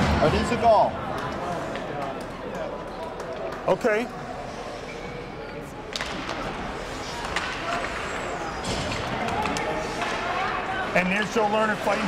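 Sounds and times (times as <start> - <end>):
sticks and puck clacking: 5.9 - 10.5.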